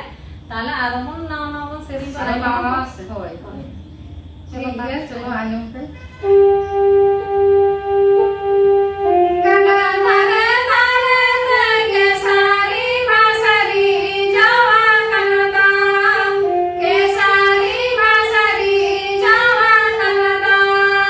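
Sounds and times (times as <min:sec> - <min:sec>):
steady held note: 0:06.0 - 0:21.0
women singing together: 0:09.4 - 0:21.0.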